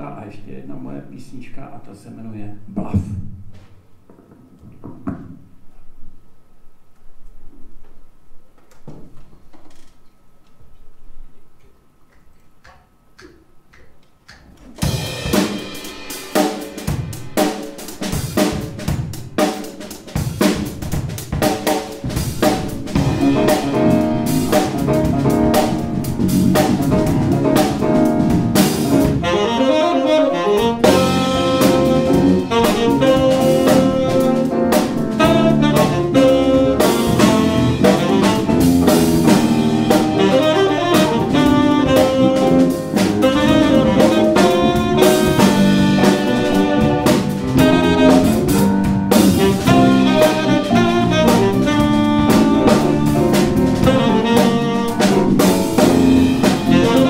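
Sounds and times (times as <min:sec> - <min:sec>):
jazz quartet playing: 0:14.7 - 0:57.0.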